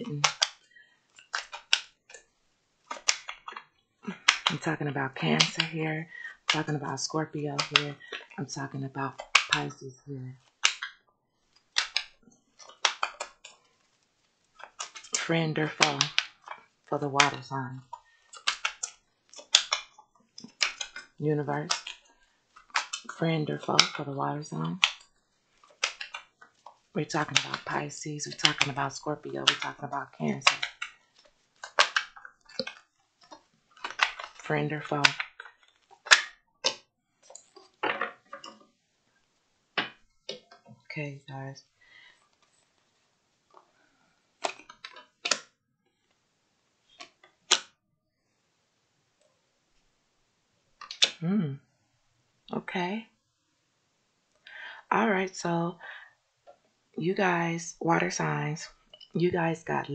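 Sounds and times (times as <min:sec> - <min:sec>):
cards being shuffled: 0:00.1 - 0:08.4, 0:09.1 - 0:38.7, 0:44.4 - 0:45.5, 0:46.9 - 0:47.7, 0:50.8 - 0:51.2.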